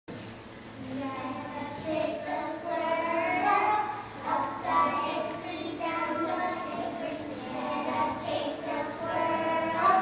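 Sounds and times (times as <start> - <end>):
children singing together: 0.8 - 10.0.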